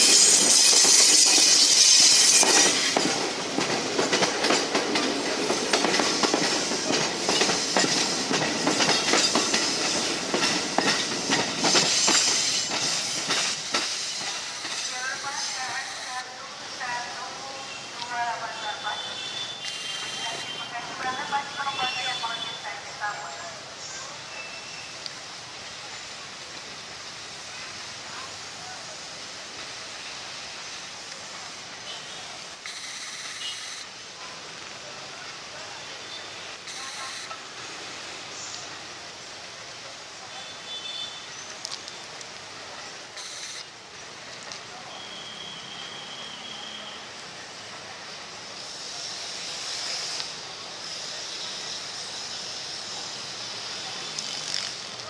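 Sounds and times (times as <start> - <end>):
electric train running on tracks: 0.0 - 55.0.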